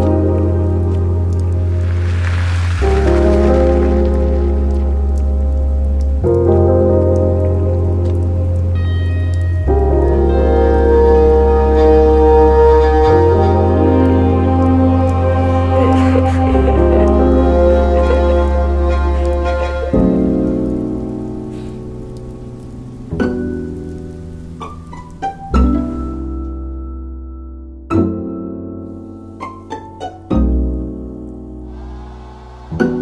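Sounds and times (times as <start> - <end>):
sustained orchestral chords: 0.0 - 24.5, 31.5 - 33.0
steady rain falling: 0.0 - 26.9, 28.9 - 33.0
held musical chord: 8.8 - 21.5.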